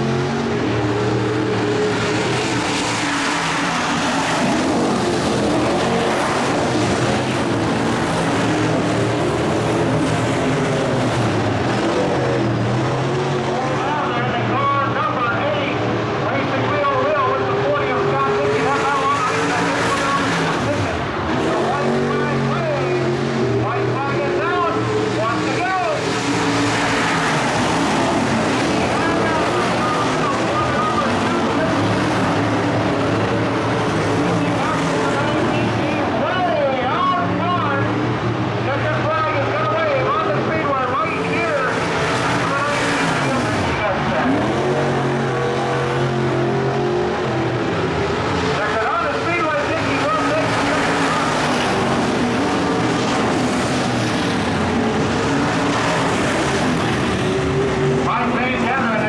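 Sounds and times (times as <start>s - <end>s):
race car engines passing: 0.0s - 59.0s
voices: 13.5s - 27.4s, 28.0s - 32.6s, 33.5s - 38.0s, 38.6s - 45.8s, 48.4s - 53.4s, 57.4s - 59.0s.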